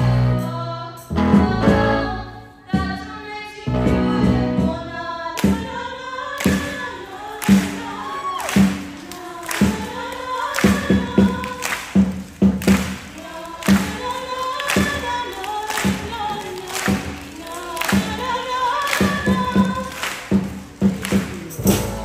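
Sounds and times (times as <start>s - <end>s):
girl singing into a microphone: 0.0s - 8.4s, 9.1s - 11.6s
drums: 0.0s - 22.0s.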